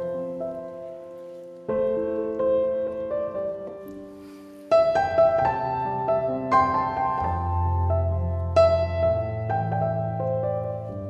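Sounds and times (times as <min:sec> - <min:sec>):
piano music: 0:00.0 - 0:11.0.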